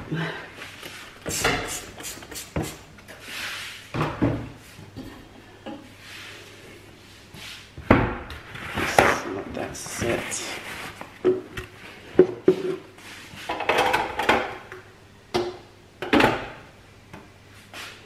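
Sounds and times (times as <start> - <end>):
spray cleaner squirting: 1.3 - 2.8
paper towel handled: 8.6 - 11.2.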